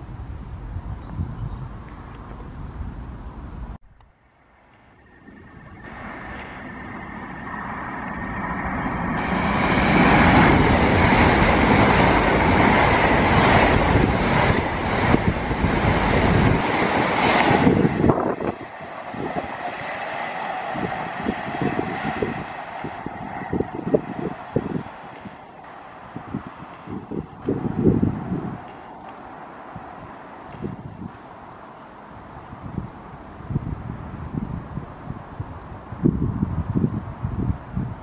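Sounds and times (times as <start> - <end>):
train passing: 3.0 - 38.0.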